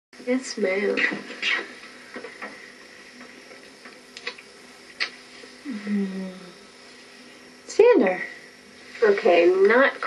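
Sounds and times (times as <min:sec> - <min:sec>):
background hiss: 0:00.2 - 0:10.0.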